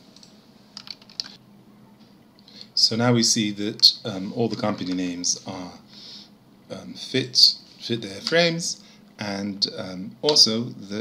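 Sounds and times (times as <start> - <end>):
computer keyboard keys tapped: 0.2 - 1.3.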